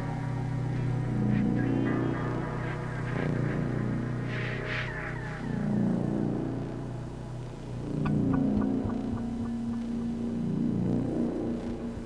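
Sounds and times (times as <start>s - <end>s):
low electronic drone: 0.0s - 12.0s
sustained synth note: 7.8s - 12.0s
short evenly spaced ticks: 8.0s - 12.0s.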